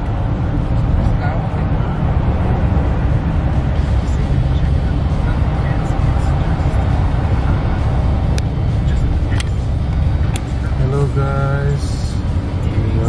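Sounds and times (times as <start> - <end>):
car driving rumble inside cabin: 0.0 - 13.0.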